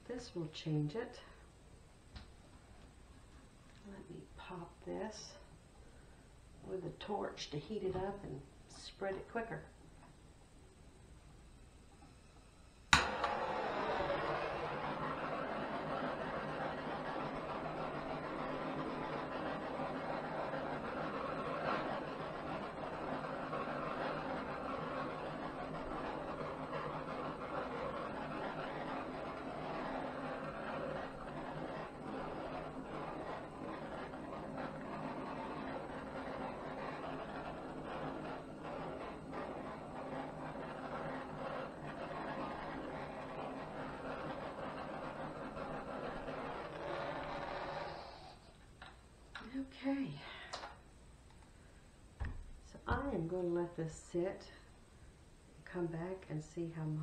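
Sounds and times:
gas torch flame hissing: 11.9 - 48.7.

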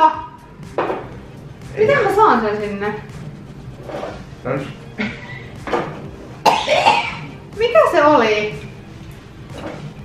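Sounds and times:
man coughing: 6.4 - 7.3.

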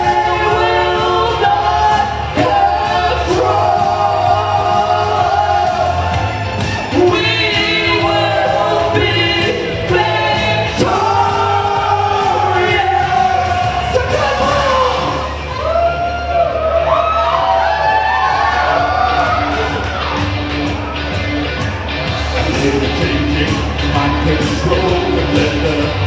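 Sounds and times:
man and woman singing: 0.0 - 6.1, 6.9 - 15.3
backing track with steady beat: 0.0 - 26.0.

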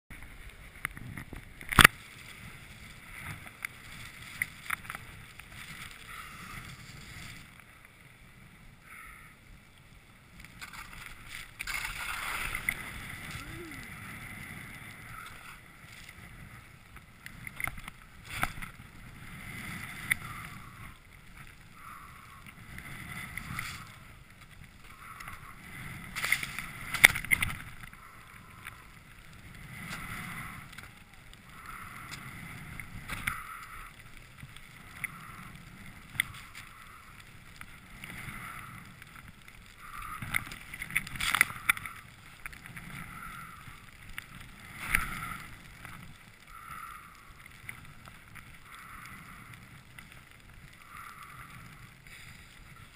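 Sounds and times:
skis hissing through powder snow: 2.0 - 7.5, 10.6 - 16.8, 51.4 - 52.9
wind on microphone: 10.3 - 46.2.

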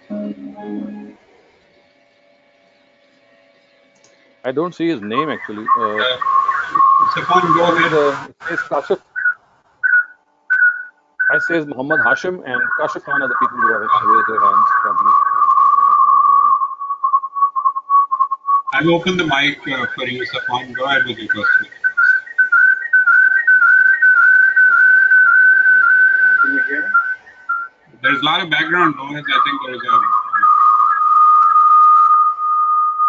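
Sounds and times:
short high whistling tones: 0.0 - 1.2, 5.0 - 33.0.

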